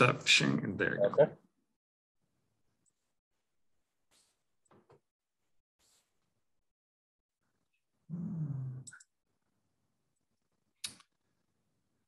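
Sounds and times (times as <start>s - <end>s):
short low vocal sound: 8.1s - 9.0s.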